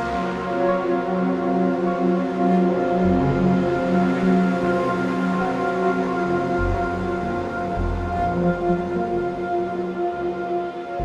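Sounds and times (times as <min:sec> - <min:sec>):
ambient synthesizer music: 0:00.0 - 0:11.0.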